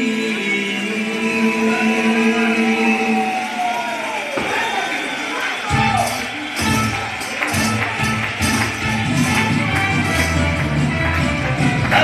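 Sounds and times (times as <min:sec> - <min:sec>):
congregation singing a hymn: 0:00.0 - 0:03.9.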